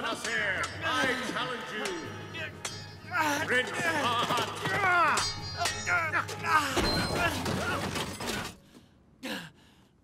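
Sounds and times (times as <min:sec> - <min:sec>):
background music: 0:00.0 - 0:08.7.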